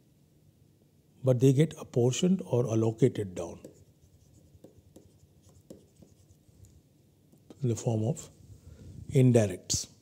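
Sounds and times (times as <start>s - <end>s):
stylus writing on tablet: 3.0s - 6.5s.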